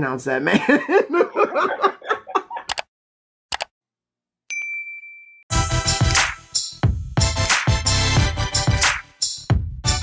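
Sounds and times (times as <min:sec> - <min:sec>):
mouse click: 0:02.7 - 0:02.9, 0:03.5 - 0:03.7
notification bell ding: 0:04.5 - 0:05.5.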